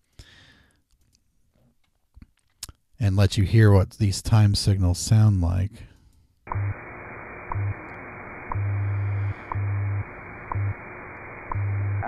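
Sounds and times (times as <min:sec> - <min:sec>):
low hum pulses: 0:06.5 - 0:12.0
radio static hiss: 0:06.5 - 0:12.0.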